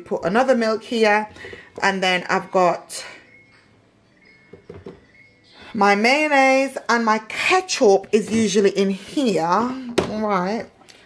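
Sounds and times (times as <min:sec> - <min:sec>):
plastic bottle knocking on shelf: 0:04.5 - 0:05.0.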